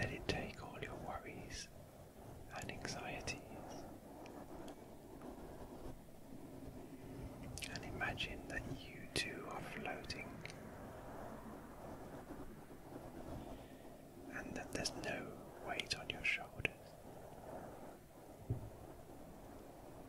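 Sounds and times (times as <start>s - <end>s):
close whispering: 0.0s - 1.7s, 2.4s - 4.0s, 7.5s - 11.2s, 14.2s - 16.9s.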